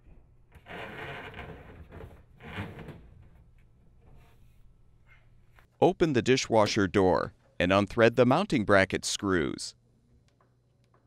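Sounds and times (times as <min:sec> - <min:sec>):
rubber hose scraping: 0:00.6 - 0:03.1.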